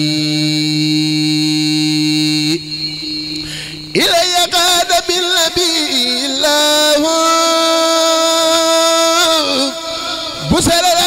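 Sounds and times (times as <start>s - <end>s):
faint held tone: 2.4s - 4.9s.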